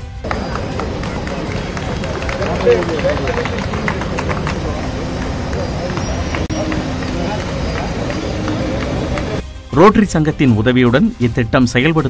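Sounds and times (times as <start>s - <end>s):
crowd voices: 0.0s - 9.4s
music: 0.0s - 12.0s
car driving past: 0.2s - 9.4s.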